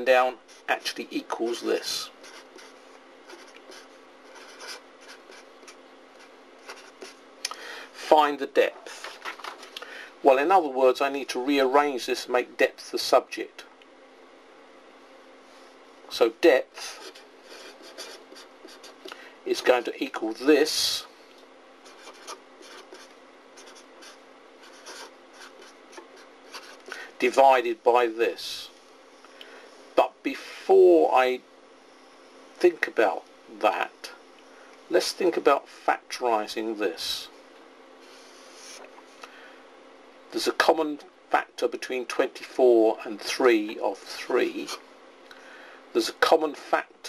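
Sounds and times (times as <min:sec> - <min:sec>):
low steady hum: 0:00.0 - 0:47.0
marker scratching on paper: 0:02.1 - 0:07.2, 0:16.8 - 0:19.8, 0:21.8 - 0:26.9.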